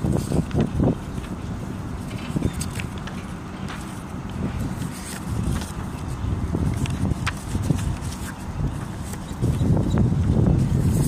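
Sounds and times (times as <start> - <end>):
low roadside rumble: 0.0 - 11.0.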